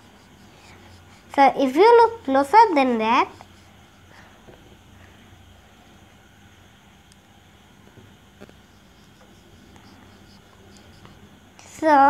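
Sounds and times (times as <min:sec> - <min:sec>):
marker scratching on whiteboard: 0:00.0 - 0:03.8, 0:08.4 - 0:11.3
child speaking: 0:01.3 - 0:03.5, 0:11.6 - 0:12.0.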